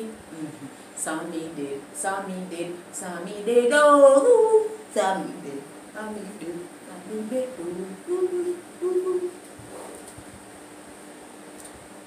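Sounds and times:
woman singing held notes: 0:00.0 - 0:09.5.

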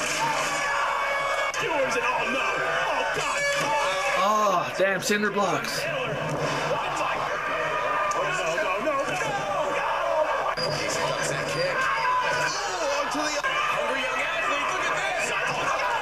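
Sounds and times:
arena crowd noise: 0:00.0 - 0:16.0
commentator talking: 0:04.2 - 0:06.0.

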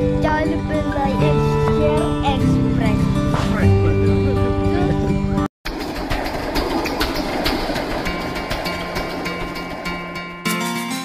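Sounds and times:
background music: 0:00.0 - 0:05.5, 0:06.5 - 0:11.0.

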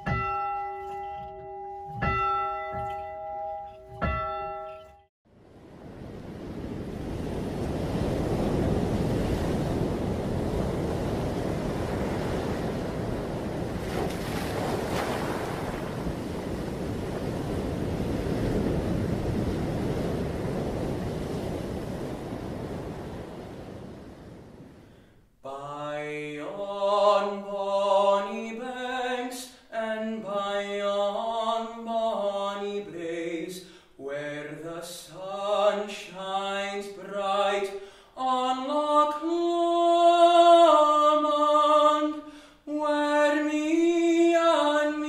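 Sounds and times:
tower bell tolling: 0:00.0 - 0:05.1
surf breaking on rocky shore: 0:05.6 - 0:24.8.

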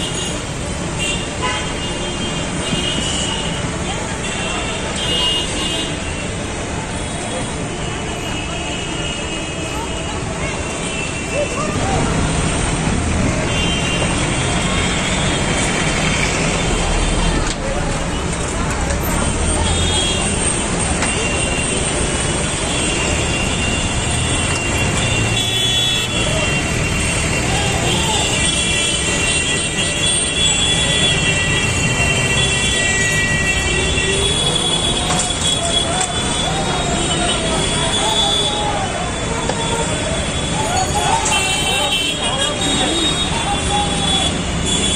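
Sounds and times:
road traffic: 0:00.0 - 0:44.9
people's voices: 0:02.4 - 0:44.9
car horns honking: 0:19.4 - 0:44.9.

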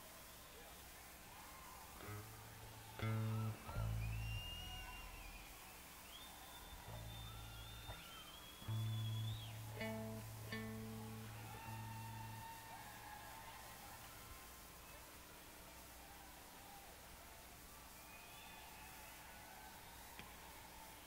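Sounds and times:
bending electric guitar tones: 0:02.0 - 0:02.4, 0:03.0 - 0:05.3, 0:06.8 - 0:12.4
bass guitar notes: 0:02.0 - 0:05.2, 0:08.6 - 0:12.3
plucked guitar notes: 0:03.0 - 0:04.2, 0:08.6 - 0:11.9.

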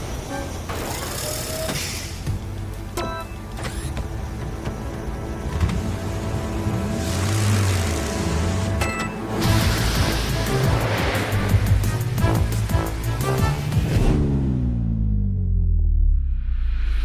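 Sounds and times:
cartoon background music: 0:03.0 - 0:14.4
monster truck engine effect: 0:06.2 - 0:15.6.

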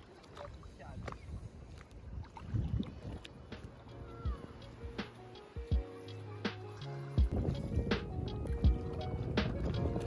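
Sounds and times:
sea water sloshing and splashing: 0:00.0 - 0:06.0.

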